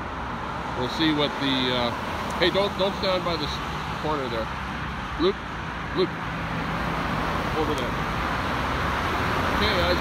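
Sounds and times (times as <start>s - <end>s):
passing car traffic: 0.0s - 10.0s.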